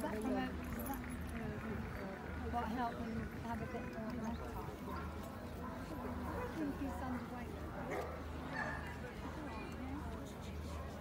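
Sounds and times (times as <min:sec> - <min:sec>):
people talking: 0:00.0 - 0:08.0, 0:08.9 - 0:11.0.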